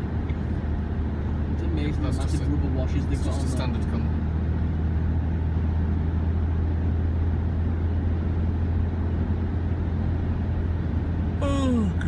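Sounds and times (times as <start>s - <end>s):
car engine drone: 0.0s - 12.0s.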